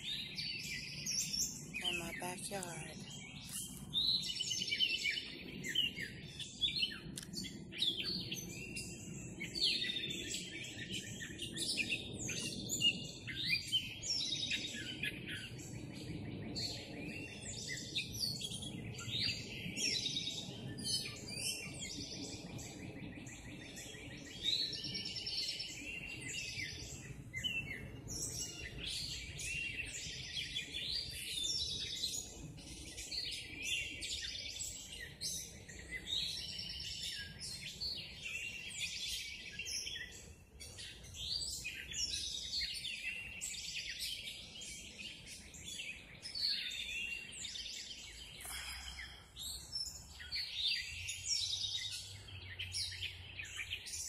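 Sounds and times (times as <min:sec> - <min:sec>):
songbirds chirping and trilling: 0:00.0 - 0:54.0.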